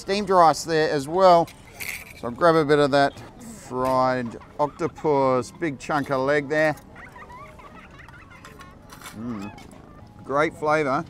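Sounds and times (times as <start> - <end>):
distant babble of voices: 2.8 - 10.9.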